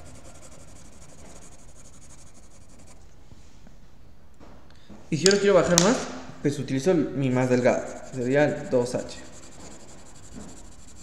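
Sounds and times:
pencil scratching on paper: 0.0s - 3.0s, 7.3s - 11.0s.

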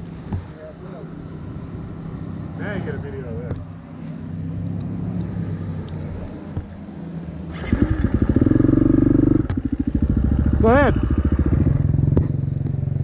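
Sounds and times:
dirt bike engine: 5.2s - 13.0s.

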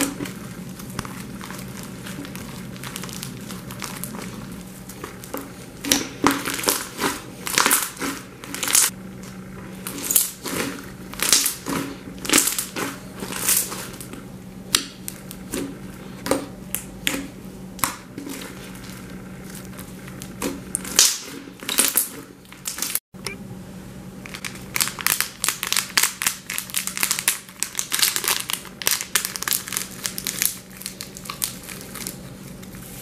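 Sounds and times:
slime crackling and squelching: 0.0s - 23.0s, 24.3s - 33.0s.

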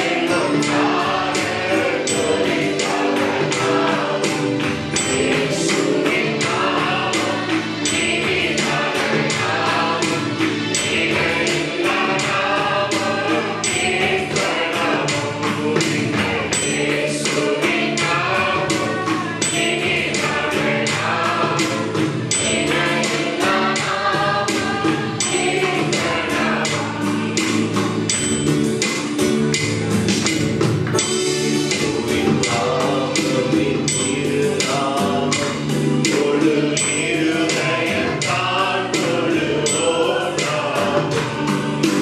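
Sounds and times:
men singing gospel song: 0.0s - 28.2s, 31.1s - 42.0s
instrumental backing with beat: 0.0s - 42.0s.

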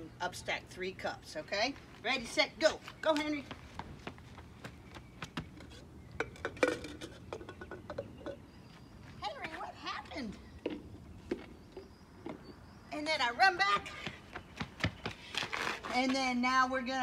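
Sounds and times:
footsteps on concrete: 1.7s - 5.7s, 8.7s - 16.6s
plastic cups clacking: 6.2s - 8.4s.

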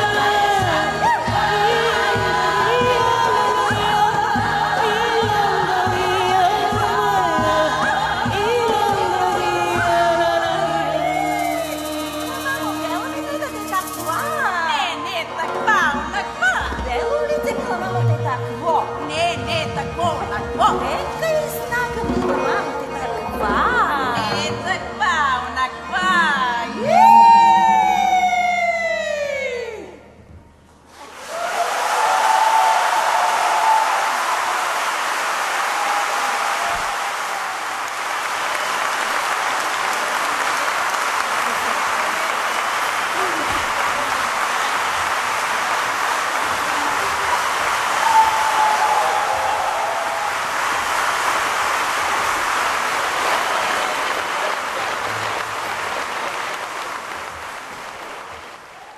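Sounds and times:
women's choir singing: 0.0s - 13.7s
audience applauding: 30.9s - 58.9s.

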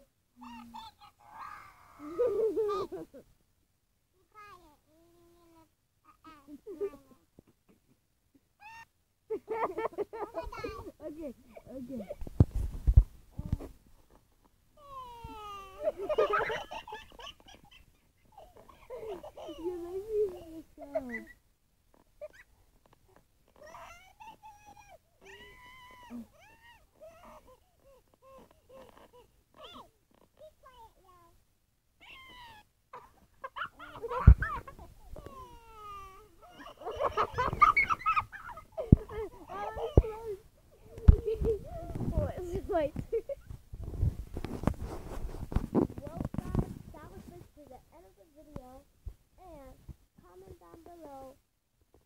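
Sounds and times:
child squealing and crying: 0.4s - 2.6s, 8.6s - 8.9s, 14.8s - 17.8s, 23.5s - 30.5s, 32.0s - 40.4s
child giggling: 1.9s - 3.2s, 6.3s - 8.0s, 8.6s - 12.2s, 15.2s - 21.4s, 33.0s - 41.9s.

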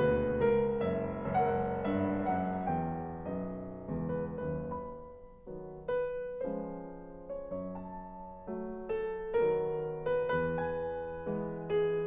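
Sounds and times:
solo piano playing: 0.0s - 12.0s.

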